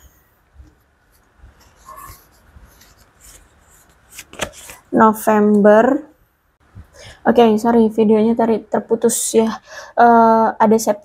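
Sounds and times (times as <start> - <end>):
paper cards rustling: 0.6 - 5.0.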